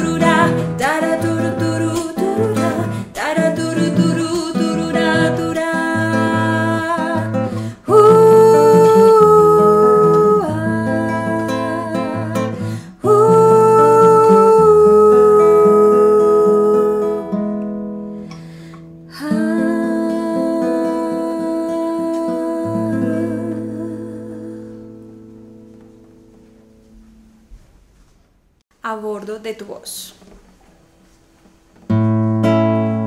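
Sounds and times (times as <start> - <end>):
woman singing long held notes: 0.0 - 17.3, 19.1 - 25.0
classical guitar: 0.0 - 28.3, 30.1 - 33.0.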